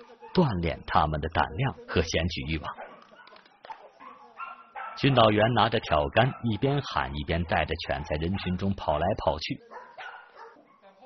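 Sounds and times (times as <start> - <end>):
puppies barking and yipping: 0.0 - 0.6, 2.5 - 11.0.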